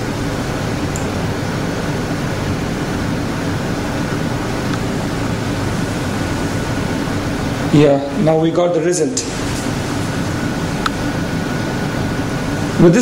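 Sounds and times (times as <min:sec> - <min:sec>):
machine hum and hiss: 0:00.0 - 0:13.0.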